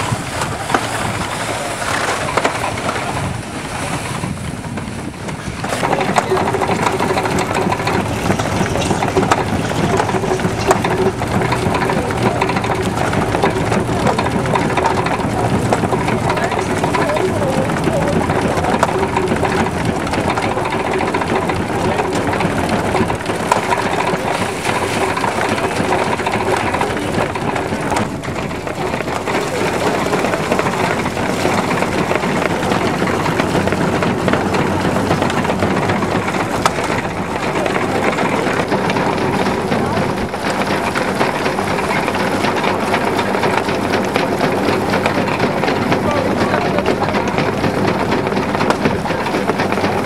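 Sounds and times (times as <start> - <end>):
grain separator rattling: 0.0 - 50.0
wooden treadmill clattering: 0.0 - 50.0.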